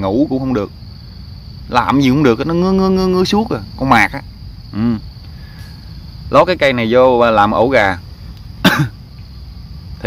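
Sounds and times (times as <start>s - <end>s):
man coughing: 8.6s - 9.0s.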